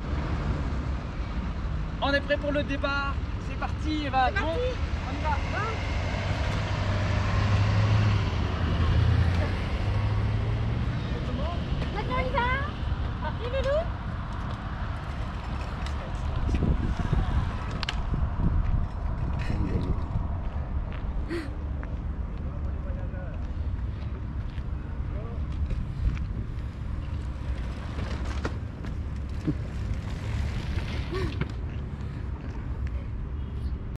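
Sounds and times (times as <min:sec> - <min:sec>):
wind rumble on microphone: 0:11.6 - 0:34.0.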